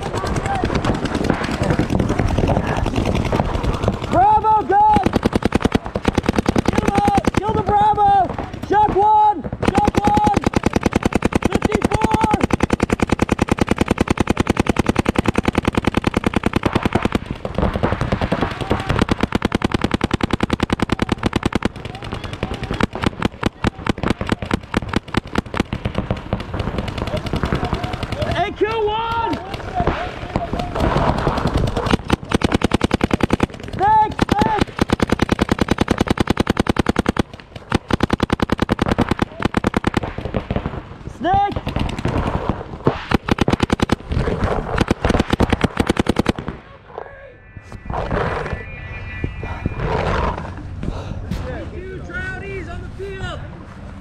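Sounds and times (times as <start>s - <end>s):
paintball markers firing rapidly: 0.0s - 40.8s, 41.4s - 46.6s
players shouting: 3.7s - 5.2s, 6.6s - 10.8s, 27.1s - 31.0s.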